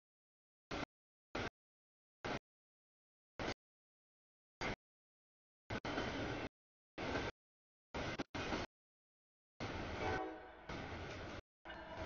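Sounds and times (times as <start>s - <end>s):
train rumble: 5.7s - 7.3s, 8.0s - 8.7s, 9.6s - 12.0s
train horn sounding: 10.0s - 10.7s.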